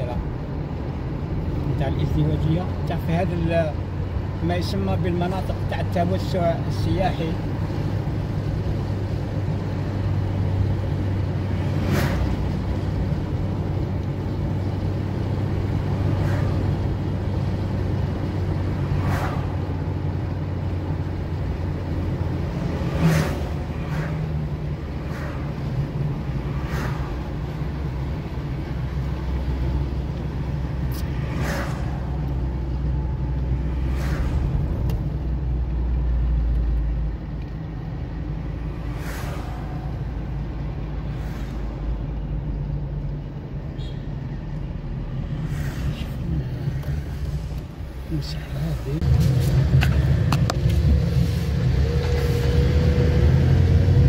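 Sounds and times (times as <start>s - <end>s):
car engine hum: 0.0s - 54.0s
road rumble: 0.0s - 54.0s.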